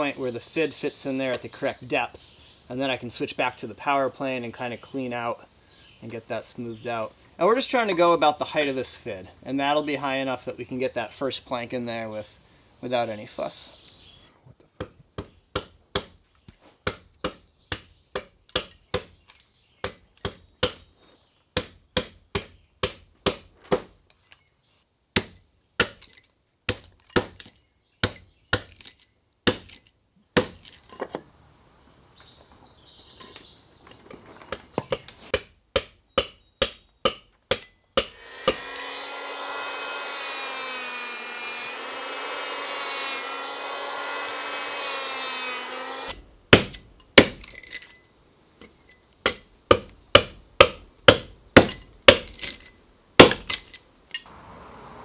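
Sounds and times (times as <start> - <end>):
adze chopping wood: 14.8 - 16.2, 16.8 - 19.2, 19.8 - 20.9, 21.6 - 24.0, 25.2 - 30.8, 34.5 - 47.6, 49.2 - 52.6, 53.2 - 53.7
electric power planer cutting wood: 38.2 - 46.2.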